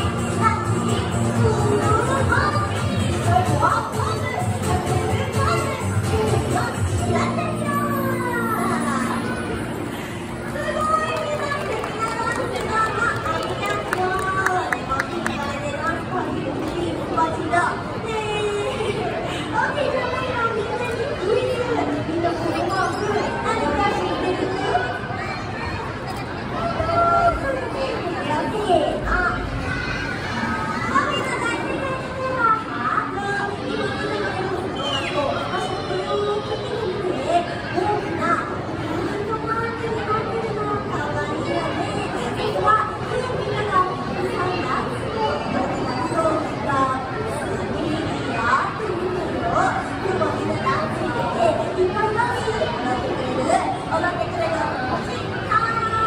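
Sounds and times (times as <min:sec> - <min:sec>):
audience chatter: 0:00.0 - 0:56.0.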